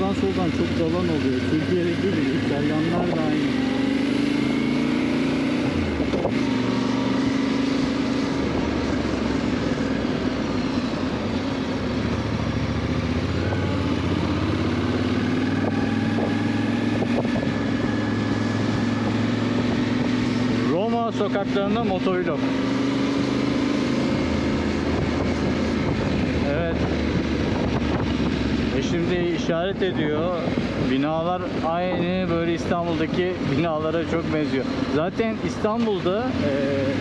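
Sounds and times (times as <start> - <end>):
motorcycle engine revving: 0.0 - 37.0
wind and road noise: 0.0 - 37.0.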